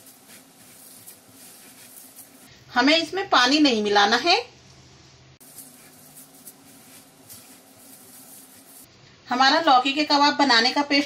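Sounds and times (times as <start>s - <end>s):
hands kneading dough squishing: 0.0s - 2.5s, 5.4s - 8.9s.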